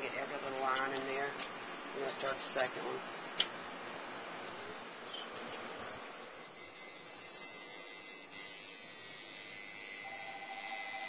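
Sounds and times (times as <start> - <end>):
constant hiss: 0.0 - 11.0
tattoo machine buzzing: 6.2 - 11.0.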